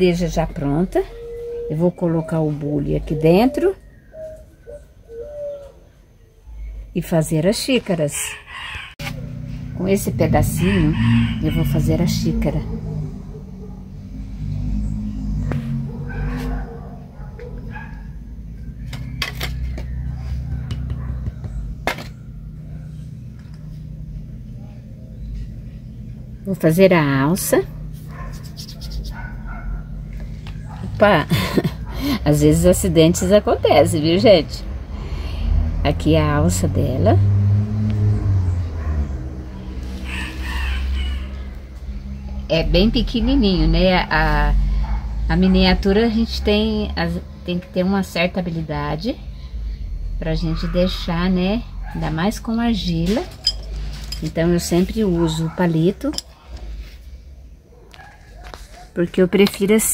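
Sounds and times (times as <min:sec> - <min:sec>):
low hum: 0:08.9 - 0:57.7
low motor drone: 0:08.9 - 0:57.7.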